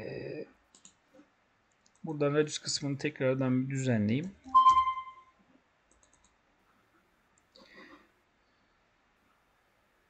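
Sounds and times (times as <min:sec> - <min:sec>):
faint mouse or keyboard clicks: 0:05.9 - 0:06.4.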